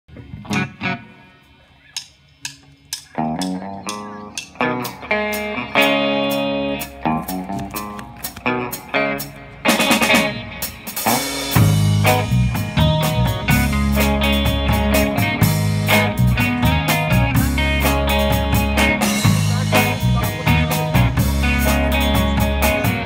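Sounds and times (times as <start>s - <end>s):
bass guitar: 0.1s - 23.0s
electric guitar chords: 0.1s - 23.0s
drum and cymbal hits: 9.6s - 23.0s.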